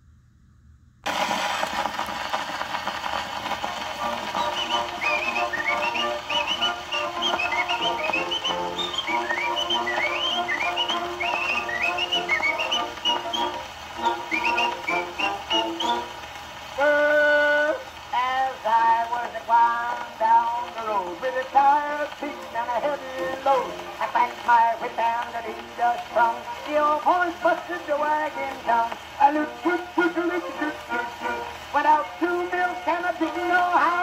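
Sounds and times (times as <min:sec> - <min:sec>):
gramophone surface hiss: 0:01.1 - 0:34.0
person whistling a tune: 0:04.2 - 0:16.1.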